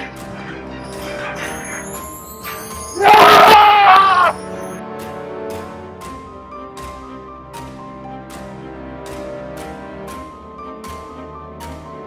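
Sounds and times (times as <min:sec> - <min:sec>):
film music with held tones: 0:00.0 - 0:12.0
loud wavering scream: 0:03.0 - 0:04.4.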